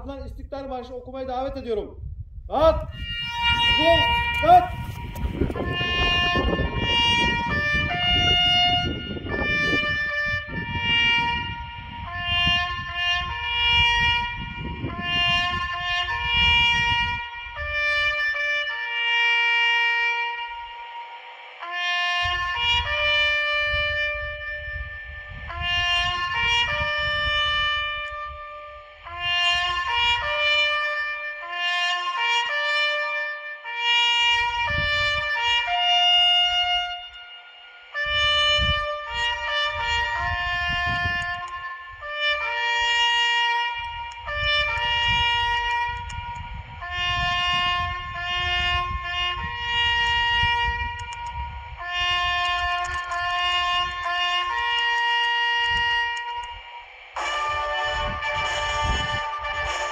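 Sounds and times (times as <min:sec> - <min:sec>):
wind rumbling on microphone: 0:00.0 - 0:19.2, 0:21.9 - 0:32.9, 0:33.9 - 0:59.9
solo trumpet slow melody: 0:02.8 - 0:59.9.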